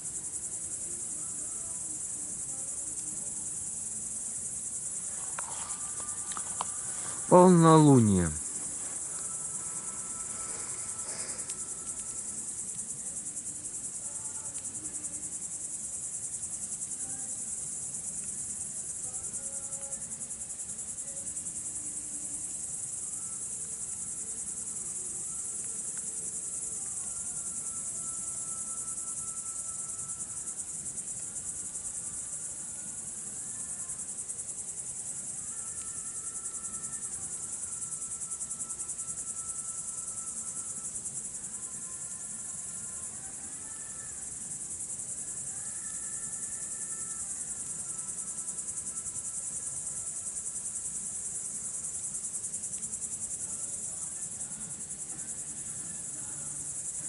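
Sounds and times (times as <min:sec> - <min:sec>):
crickets chirping: 0:00.0 - 0:57.0.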